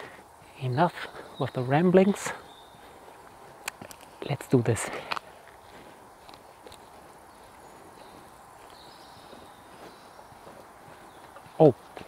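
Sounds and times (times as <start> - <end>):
outdoor background hiss: 0.0 - 12.0.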